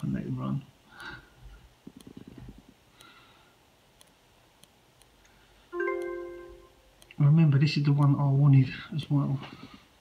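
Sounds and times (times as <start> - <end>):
electronic bell-like chime: 5.8 - 6.9.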